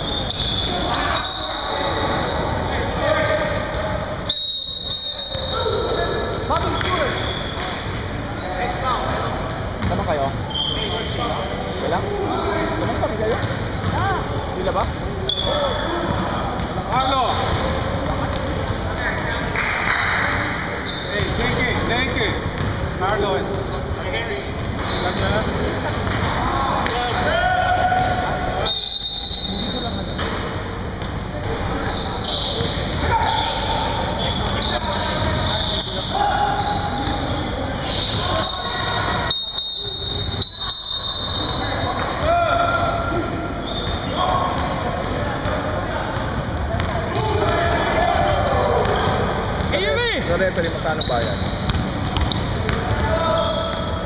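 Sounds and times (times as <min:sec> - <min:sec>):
people talking and calling out: 0:00.0 - 0:54.0.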